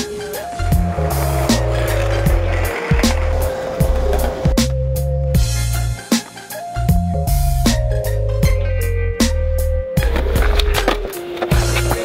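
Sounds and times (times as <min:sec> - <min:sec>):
skateboard rolling on concrete: 0:00.0 - 0:08.1, 0:10.0 - 0:12.0
music with heavy bass and drums: 0:00.0 - 0:12.0.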